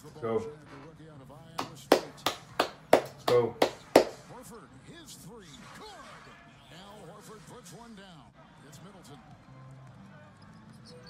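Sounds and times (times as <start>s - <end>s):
arena crowd noise: 0.0s - 11.0s
commentator talking: 3.2s - 3.7s.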